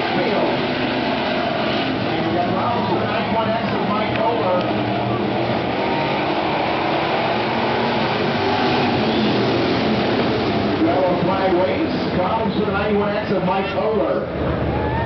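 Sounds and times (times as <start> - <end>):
race car engines droning: 0.0 - 15.0
voices: 2.0 - 5.7, 10.8 - 14.3.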